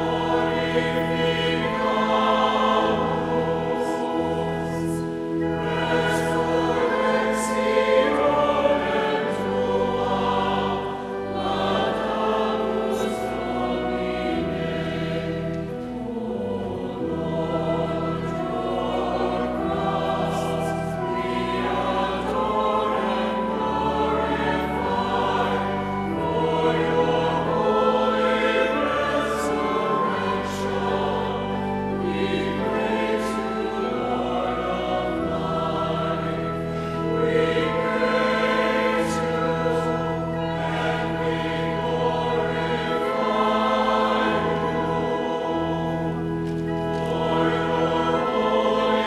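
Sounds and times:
choir singing a hymn: 0.0s - 49.0s
sustained low accompanying notes: 0.0s - 49.0s.

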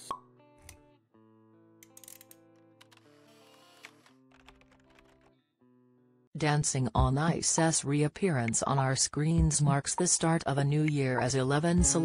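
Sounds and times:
background music: 9.4s - 12.0s.

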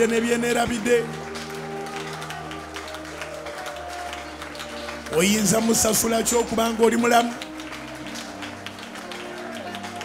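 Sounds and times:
congregation hand claps: 0.0s - 10.0s.

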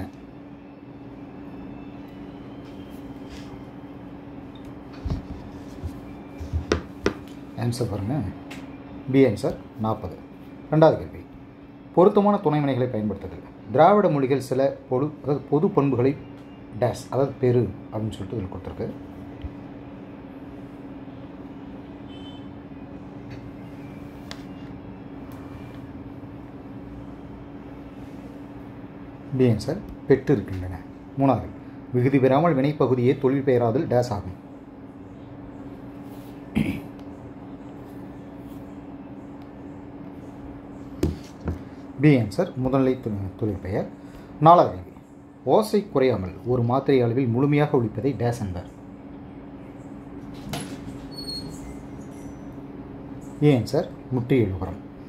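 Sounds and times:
steady background hum: 0.0s - 55.0s.

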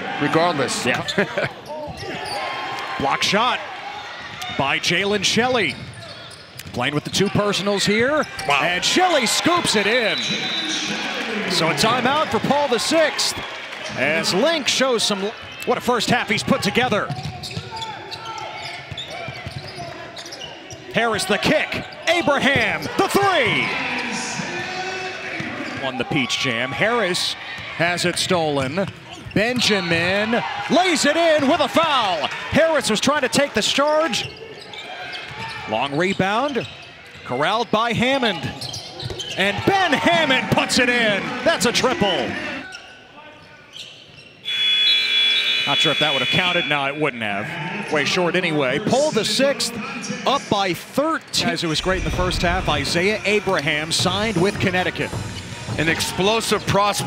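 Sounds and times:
murmur of crowd voices: 0.0s - 43.7s, 45.6s - 57.0s
gym buzzer: 44.4s - 46.9s.

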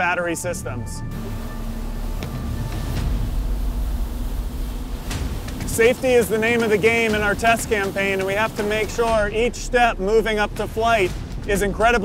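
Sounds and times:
faint background music: 0.0s - 12.0s
low mechanical rumble: 0.5s - 12.0s.

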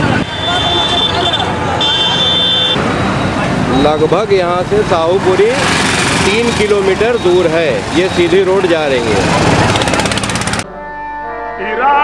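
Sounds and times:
road traffic: 0.0s - 10.9s.

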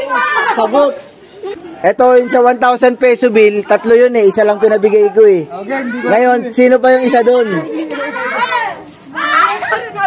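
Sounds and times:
girls and children calling out: 0.0s - 2.8s, 4.3s - 10.0s.

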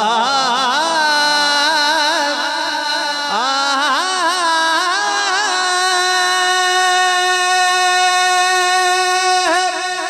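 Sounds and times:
man singing a long note: 0.0s - 10.0s.

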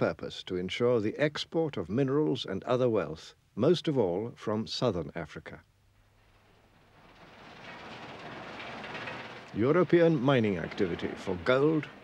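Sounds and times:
industrial machinery clatter and rumble: 6.9s - 12.0s.

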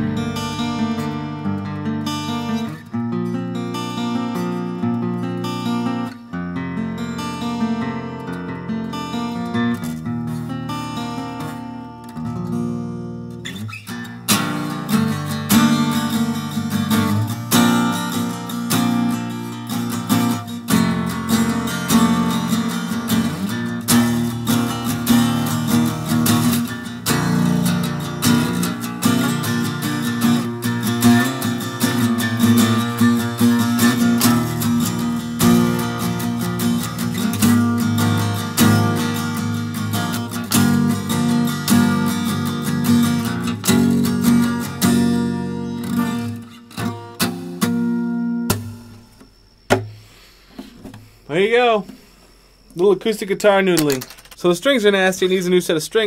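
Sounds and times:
acoustic guitar strumming chords: 0.0s - 52.1s.

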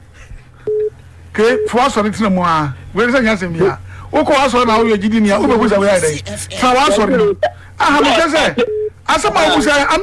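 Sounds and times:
person talking: 4.8s - 8.3s.

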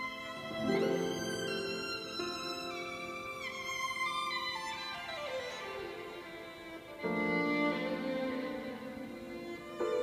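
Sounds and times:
bowed violin in reverberant space: 0.0s - 10.0s.

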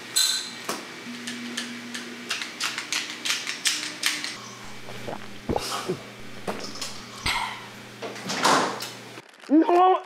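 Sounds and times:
faint low hum: 4.4s - 7.8s.

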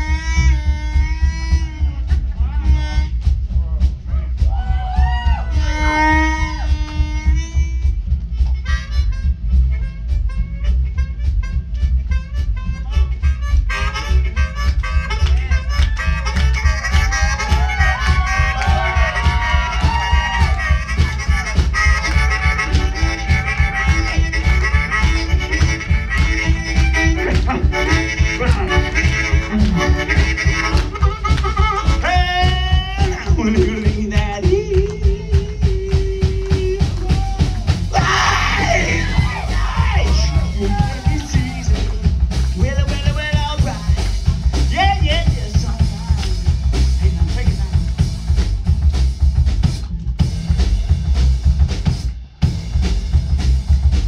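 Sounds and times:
amplified harmonica: 0.0s - 3.7s, 5.2s - 45.4s
drums: 0.0s - 54.0s
upright bass: 0.0s - 54.0s.

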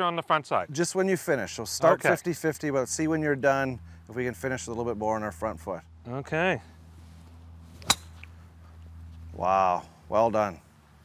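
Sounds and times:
golf club striking ball: 7.7s - 8.4s.

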